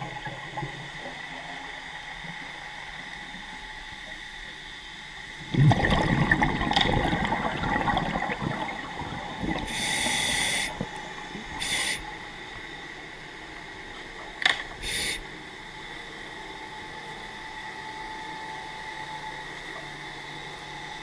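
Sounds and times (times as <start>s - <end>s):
faint steady hum: 0.0s - 21.0s
scuba gear hissing air bursts: 9.7s - 10.8s, 11.6s - 12.0s, 14.8s - 15.2s.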